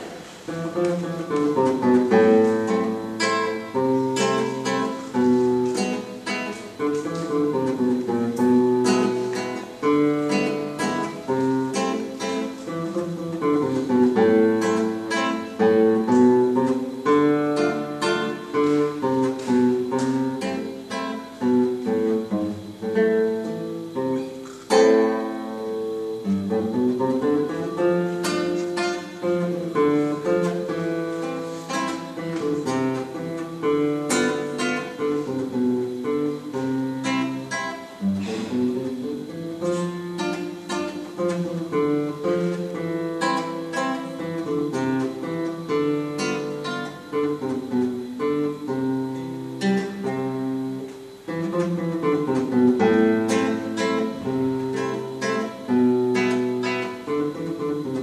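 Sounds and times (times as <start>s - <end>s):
classical guitar waltz: 0.0s - 58.0s.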